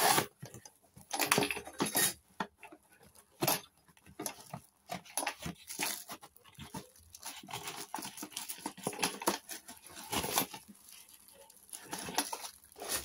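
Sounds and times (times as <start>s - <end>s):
plastic packaging crinkling: 4.2s - 13.0s
cardboard box rustling: 4.4s - 13.0s.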